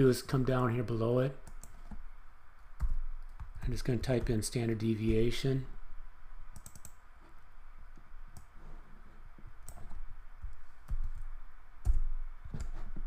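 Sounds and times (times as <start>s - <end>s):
faint steady hiss: 0.0s - 13.0s
computer mouse clicks: 1.4s - 2.0s, 6.5s - 7.0s, 7.9s - 8.5s, 9.6s - 13.0s
keyboard clicks: 1.4s - 2.0s, 6.5s - 7.0s, 9.6s - 10.0s.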